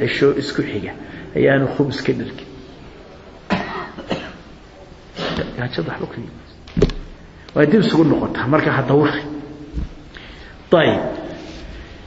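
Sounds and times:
person coughing: 0:03.5 - 0:04.5.

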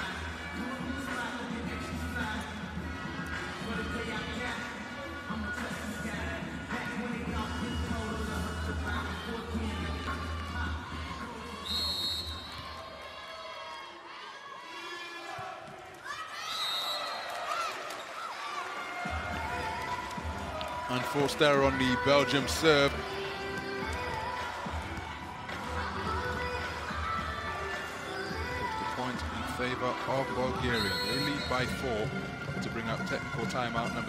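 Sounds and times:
music over arena loudspeakers: 0:00.0 - 0:12.8, 0:18.9 - 0:34.0
crowd noise: 0:00.0 - 0:34.0.

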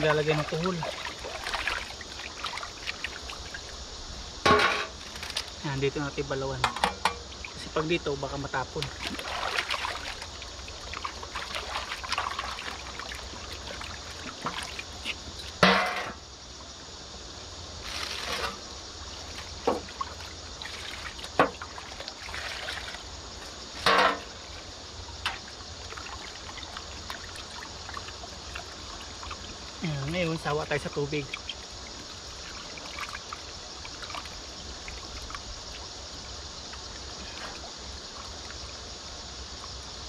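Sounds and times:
water splashing and pouring: 0:00.0 - 0:05.7, 0:07.3 - 0:16.0, 0:17.8 - 0:38.9
river water sloshing and trickling: 0:00.0 - 0:40.0.

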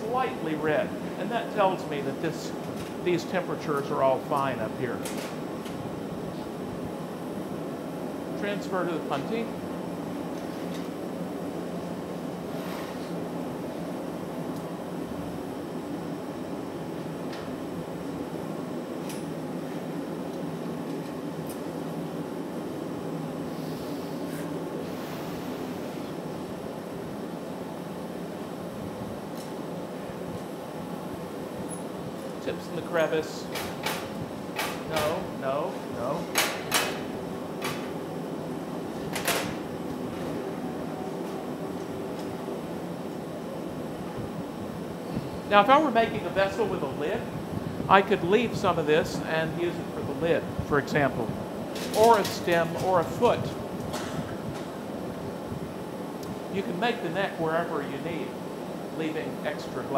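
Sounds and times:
furnace burner roar: 0:00.0 - 0:59.9.

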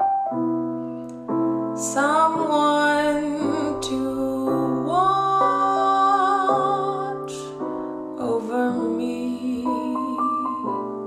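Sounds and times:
piano chords: 0:00.0 - 0:11.0
person singing jazz ballad: 0:01.8 - 0:10.8.

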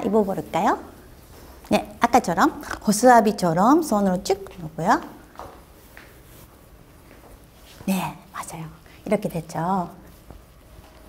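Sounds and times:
cloth rustling: 0:00.0 - 0:08.2, 0:09.5 - 0:11.0.

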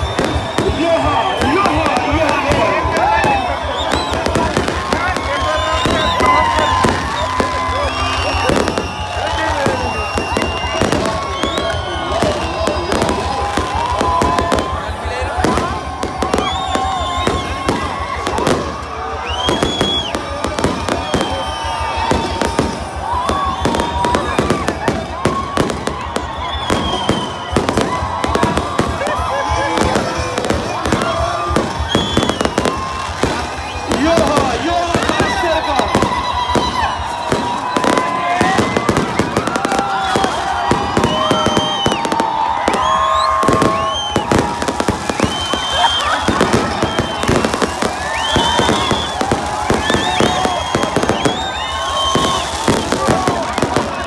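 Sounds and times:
crowd voices: 0:00.0 - 0:54.0
fireworks bangs and crackles: 0:00.0 - 0:54.0.

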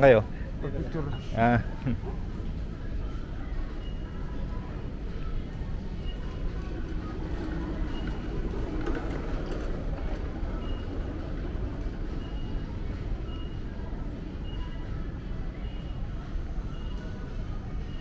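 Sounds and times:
distant murmur: 0:00.0 - 0:18.0
ventilation rumble: 0:00.0 - 0:18.0.

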